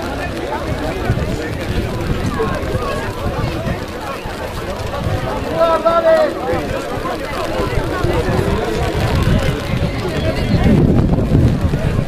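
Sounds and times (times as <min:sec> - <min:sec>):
distant voices shouting: 0:00.0 - 0:10.8.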